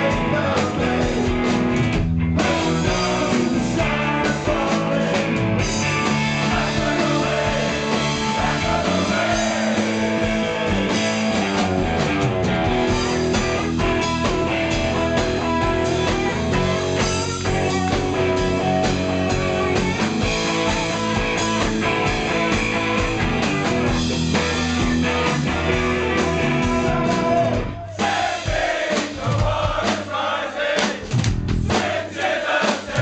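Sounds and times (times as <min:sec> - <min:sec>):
electric guitars: 0:00.0 - 0:28.0
drum kit: 0:00.0 - 0:33.0.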